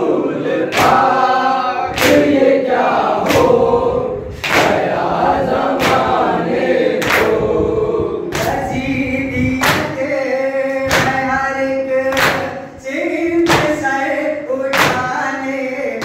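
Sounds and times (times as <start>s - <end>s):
men chanting in unison: 0.0s - 16.0s.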